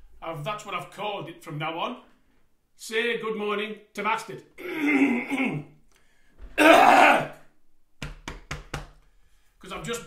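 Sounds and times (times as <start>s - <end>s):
man coughing: 6.6s - 7.3s.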